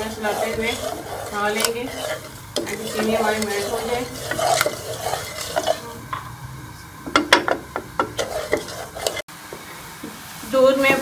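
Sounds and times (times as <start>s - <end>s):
spatula scraping metal pot: 0.0s - 6.2s, 7.5s - 9.3s
spatula knocking pot: 0.0s - 6.3s, 7.0s - 9.2s.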